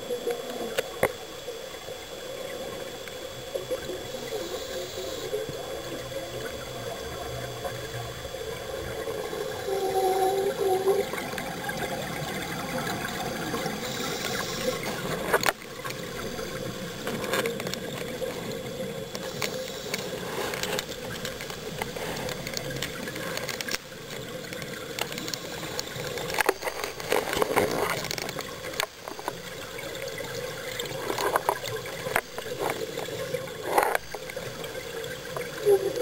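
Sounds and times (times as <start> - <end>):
faint hum: 0.0 - 36.0
underwater water wash: 0.0 - 36.0.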